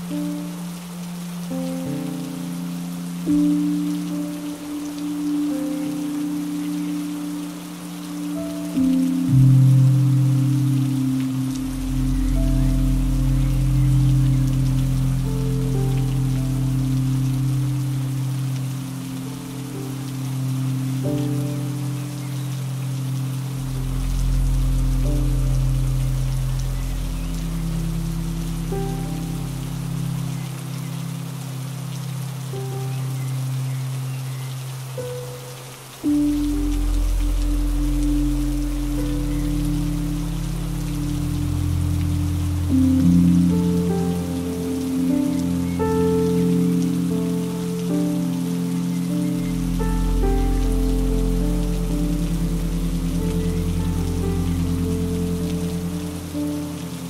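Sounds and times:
slow soft music: 0.0s - 57.0s
steady rain falling: 0.0s - 57.0s.

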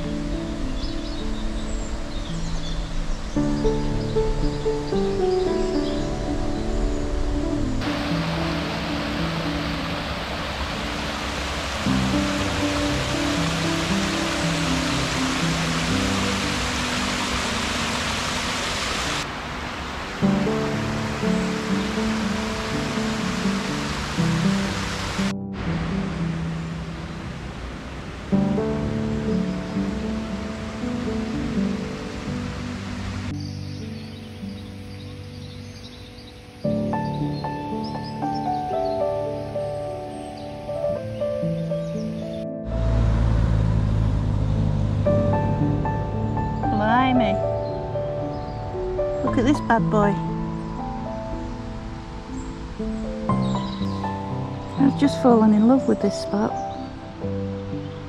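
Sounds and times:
steady rushing noise: 6.1s - 33.4s.

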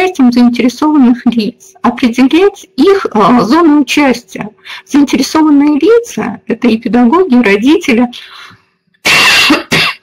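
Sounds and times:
woman coughing: 9.0s - 10.0s.

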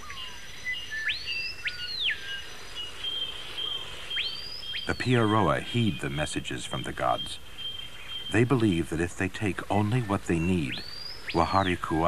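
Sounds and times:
bird whistled calls: 0.0s - 8.9s, 9.7s - 12.0s.

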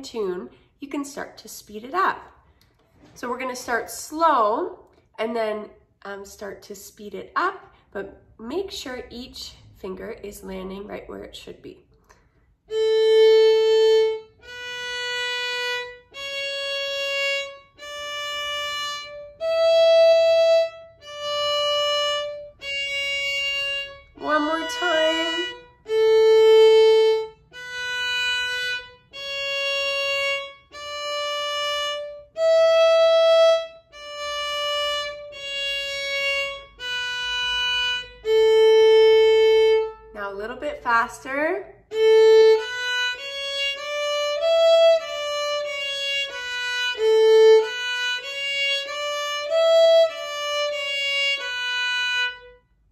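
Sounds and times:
person speaking: 3.1s - 11.8s, 24.2s - 25.6s, 40.1s - 41.8s
violin playing a slow scale: 12.6s - 40.2s, 41.9s - 52.9s.

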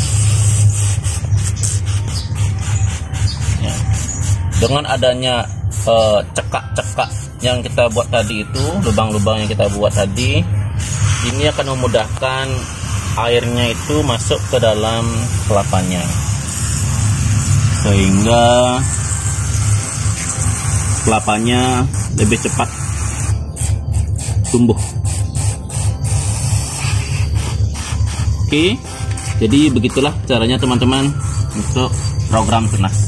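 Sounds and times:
sprayer misting water hiss: 0.0s - 5.0s, 9.7s - 33.0s
steady low hum: 0.0s - 33.0s
steady low rumble: 0.0s - 33.0s.

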